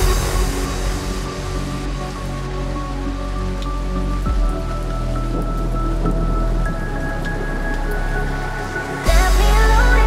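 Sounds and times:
low bass drone: 0:00.0 - 0:10.0.

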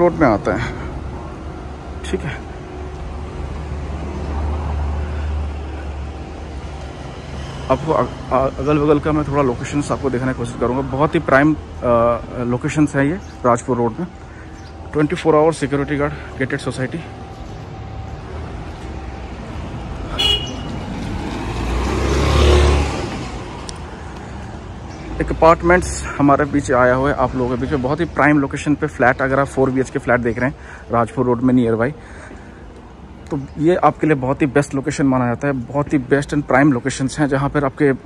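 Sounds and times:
motor vehicle passing: 0:00.6 - 0:13.4, 0:14.1 - 0:26.7.

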